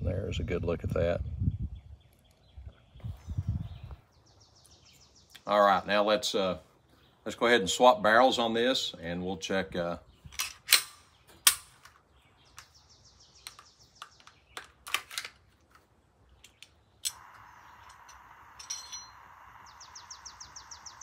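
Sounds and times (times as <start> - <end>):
pistol metallic clicks: 10.4 - 12.7
steady hiss: 17.1 - 21.0
bird trilling: 17.2 - 21.0.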